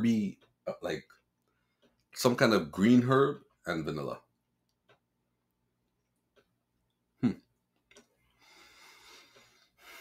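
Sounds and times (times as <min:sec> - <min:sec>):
soft breaths through the nose: 0:08.2 - 0:10.0.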